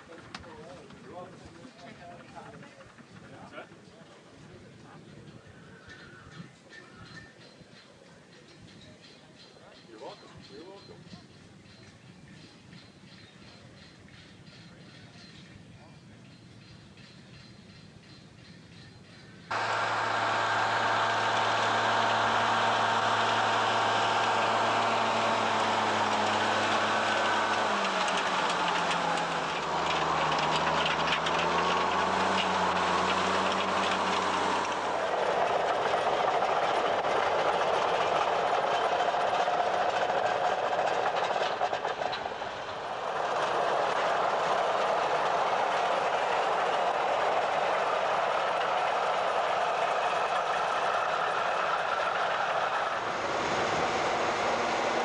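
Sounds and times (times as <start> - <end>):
diesel tractor engine running: 19.5 - 55.0
rough machine rumble: 19.5 - 55.0.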